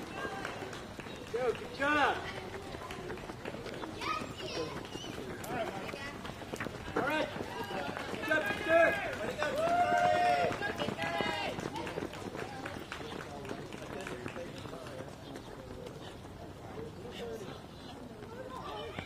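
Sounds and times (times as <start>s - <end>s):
running shoes slapping on asphalt: 0.0s - 19.0s
voices calling out and talking: 0.0s - 19.0s.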